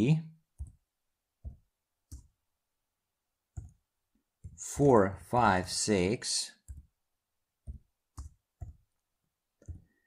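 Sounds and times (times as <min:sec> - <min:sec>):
computer keyboard keystrokes: 0:01.4 - 0:02.4, 0:07.6 - 0:08.8.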